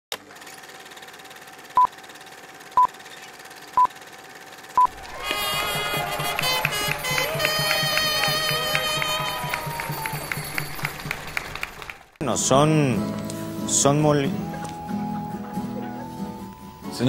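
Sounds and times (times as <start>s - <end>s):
music with steady beat: 4.9s - 11.2s.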